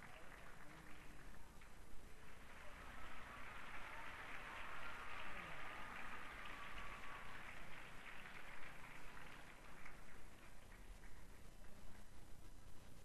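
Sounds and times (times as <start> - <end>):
audience applauding: 0.0 - 11.8.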